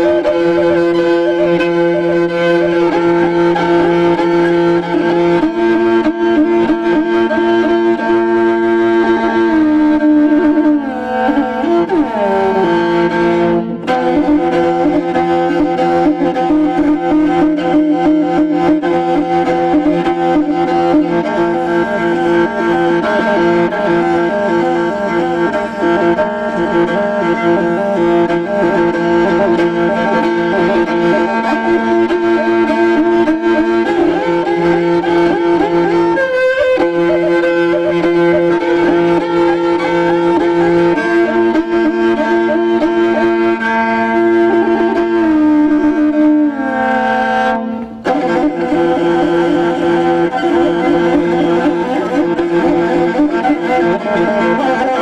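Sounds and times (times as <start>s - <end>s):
bowed fiddle long held notes: 0.0s - 55.0s.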